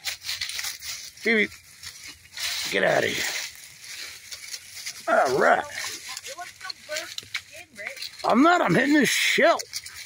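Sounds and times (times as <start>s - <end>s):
rustles: 0.0s - 10.0s.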